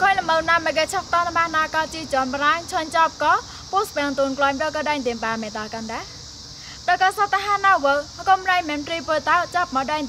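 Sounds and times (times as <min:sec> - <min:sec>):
woman speaking: 0:00.0 - 0:06.2, 0:06.8 - 0:10.0
faint high hiss: 0:00.0 - 0:10.0.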